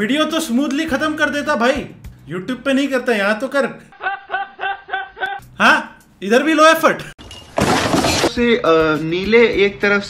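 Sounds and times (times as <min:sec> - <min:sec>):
man laughing: 0:03.9 - 0:05.5.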